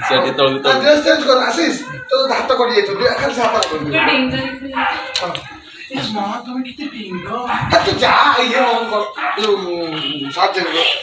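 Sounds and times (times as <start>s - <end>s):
man speaking loudly: 0.0s - 4.2s, 5.2s - 11.0s.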